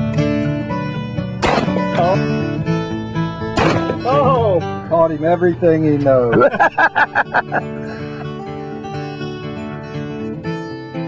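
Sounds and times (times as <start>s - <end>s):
acoustic guitar music: 0.0s - 11.0s
shotgun shots: 1.4s - 2.0s, 3.6s - 4.0s.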